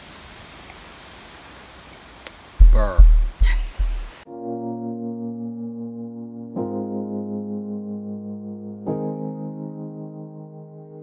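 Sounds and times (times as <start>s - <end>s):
wind noise on microphone: 2.6s - 4.2s.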